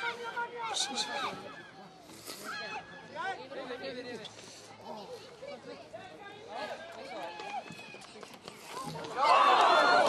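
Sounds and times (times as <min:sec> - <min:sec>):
voices shouting and calling: 0:00.0 - 0:03.9.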